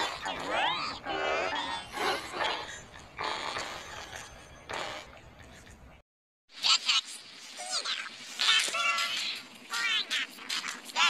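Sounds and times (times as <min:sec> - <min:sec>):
distorted garbled voice: 0:06.5 - 0:11.0.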